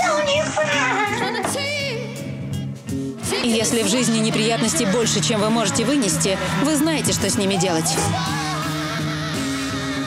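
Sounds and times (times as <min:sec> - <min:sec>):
woman singing with vibrato: 0:03.2 - 0:08.6.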